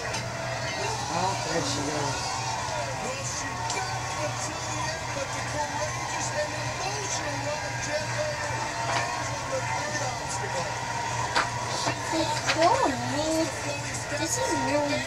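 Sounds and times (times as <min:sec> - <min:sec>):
indistinct voices talking: 0:00.0 - 0:15.0.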